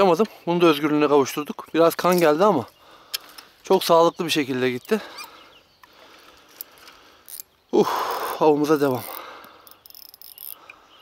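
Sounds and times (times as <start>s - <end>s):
insects chirping: 1.6s - 11.0s.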